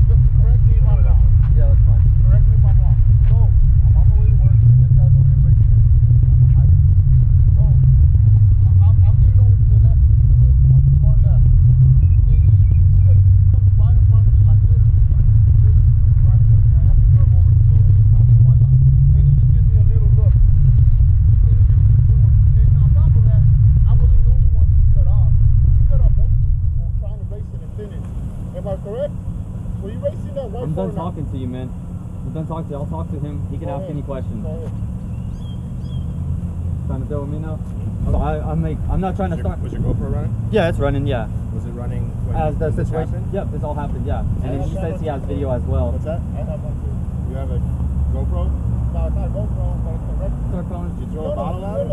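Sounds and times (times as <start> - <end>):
motorcycle engine idling: 0.0 - 18.6, 19.2 - 51.9
faint voices talking: 0.0 - 51.9.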